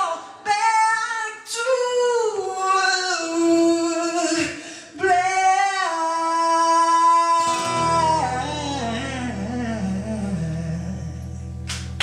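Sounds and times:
man singing a long high note: 0.0s - 11.6s.

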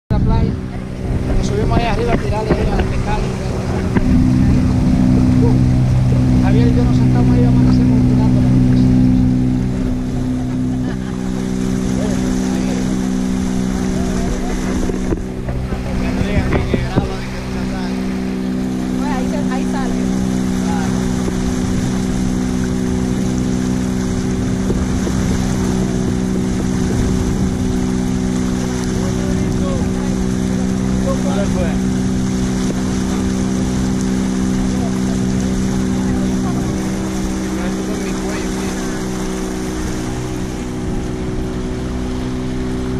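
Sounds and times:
motorboat engine running: 0.0s - 42.9s.

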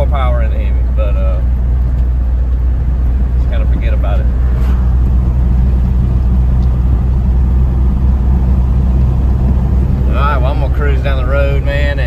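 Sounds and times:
truck engine and road drone: 0.0s - 12.0s.

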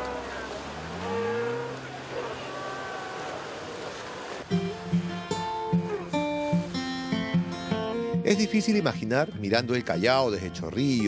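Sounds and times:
sea lions moaning: 0.0s - 6.7s
waves splashing: 0.0s - 8.2s
plucked acoustic guitar music: 4.5s - 11.0s.

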